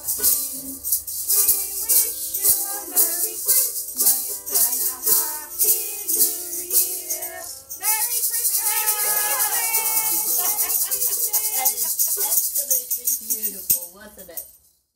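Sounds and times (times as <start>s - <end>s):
maracas shaking: 0.0s - 14.9s
group singing a carol: 0.2s - 12.4s.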